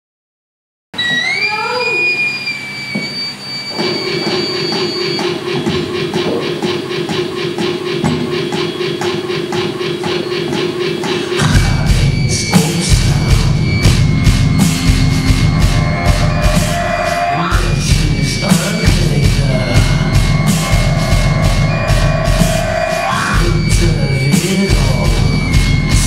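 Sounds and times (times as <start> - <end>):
synthesizer tones gliding: 1.0 - 26.0
low synth drone: 2.0 - 26.0
band with loud drums: 3.0 - 26.0.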